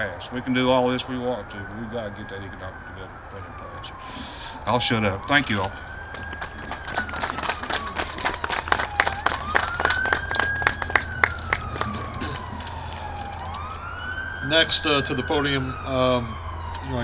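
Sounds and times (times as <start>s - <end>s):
siren rising and falling: 0.0s - 17.0s
audience applauding: 6.1s - 13.8s.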